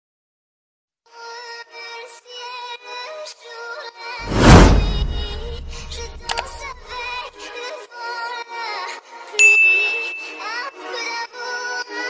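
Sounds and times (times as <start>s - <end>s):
bright bell ding: 9.4s - 10.4s.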